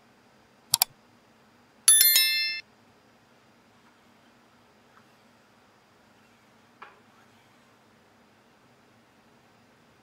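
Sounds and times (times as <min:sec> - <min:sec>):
bright bell strikes: 0:01.9 - 0:02.6.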